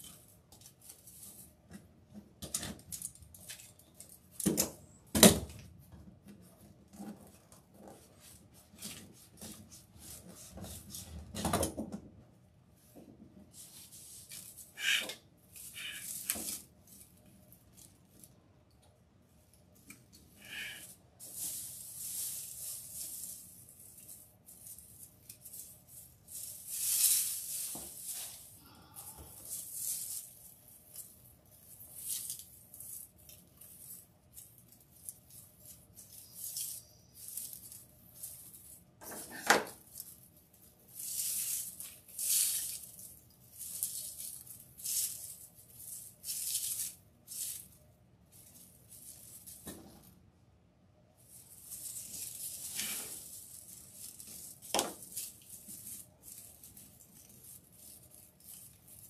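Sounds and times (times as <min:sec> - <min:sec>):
raffia and mesh rustling: 0:19.4 - 0:50.3, 0:51.1 - 0:59.0.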